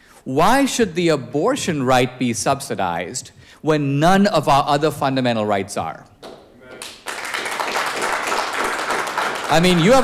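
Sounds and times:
audience applause: 0:06.8 - 0:10.0.

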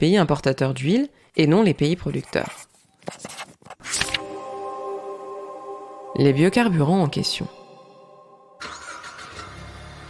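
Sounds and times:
faint music: 0:03.9 - 0:09.8
car engine starting and running: 0:08.6 - 0:10.0.

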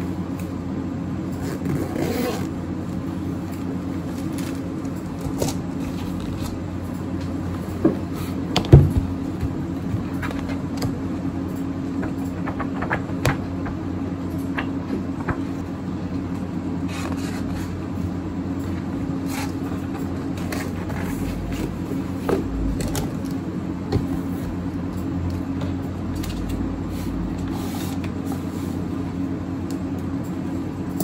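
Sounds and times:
low mechanical hum: 0:00.0 - 0:31.0.

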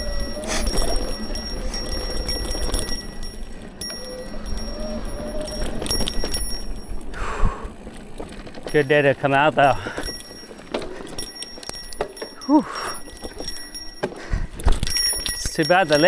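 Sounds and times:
bike clicks and rattles: 0:00.0 - 0:16.0
tyres rumbling on dirt: 0:00.0 - 0:16.0.

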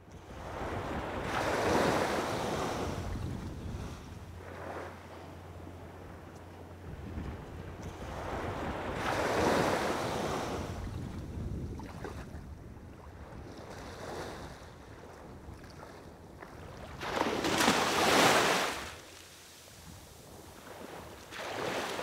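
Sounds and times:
wind rumbling on microphone: 0:00.2 - 0:17.6
small waves washing on shore: 0:00.3 - 0:05.6, 0:07.1 - 0:22.0.

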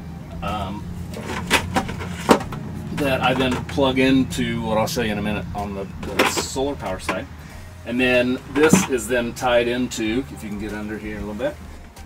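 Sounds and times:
steady low hum: 0:00.0 - 0:12.0
pump and hose knocking and rattling: 0:00.4 - 0:04.0, 0:05.4 - 0:07.4, 0:08.4 - 0:09.6.

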